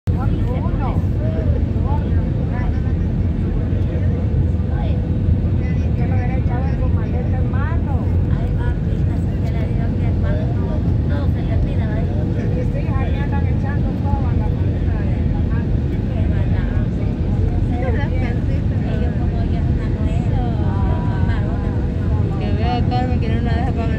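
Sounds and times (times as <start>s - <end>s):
jet engine and airflow rumble: 0.1s - 23.9s
people talking: 0.2s - 23.9s.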